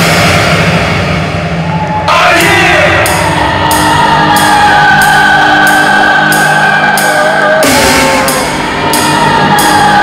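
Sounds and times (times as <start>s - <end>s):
loud hardcore electronic music: 0.0s - 10.0s.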